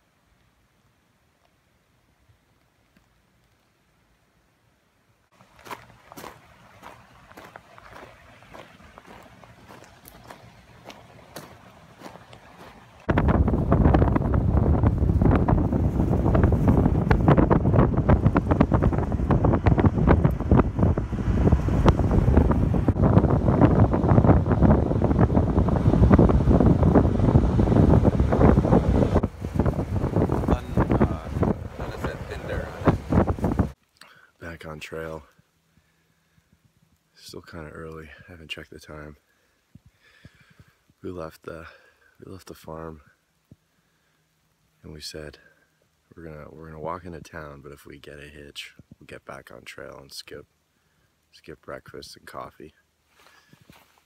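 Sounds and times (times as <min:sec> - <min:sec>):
road noise: 0:05.3 - 0:33.8
wind buffeting microphone: 0:05.6 - 0:33.8.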